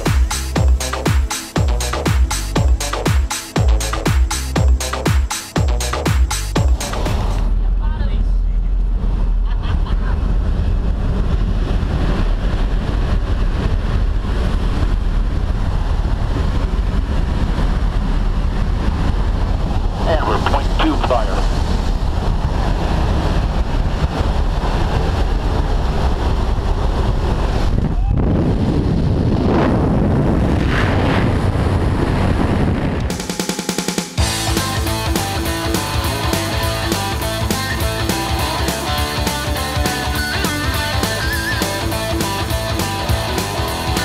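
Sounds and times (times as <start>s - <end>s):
wind roaring through open door: 7.4s - 33.1s
aircraft engine drone: 9.9s - 27.7s.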